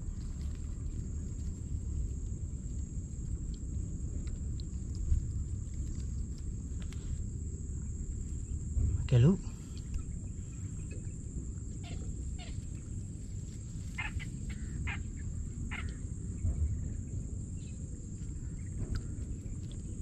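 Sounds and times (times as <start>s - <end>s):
low rumble: 0.0s - 20.0s
small animals chirping: 9.6s - 16.3s.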